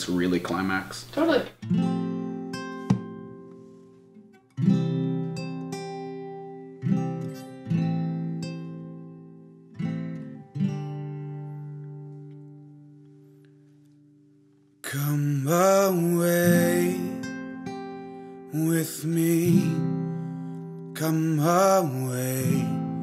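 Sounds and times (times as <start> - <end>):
acoustic guitar strummed chords: 1.5 - 23.0.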